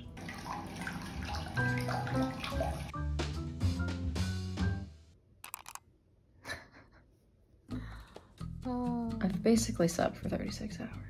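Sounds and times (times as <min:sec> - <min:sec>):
phone handling clicks: 0:05.4 - 0:05.8.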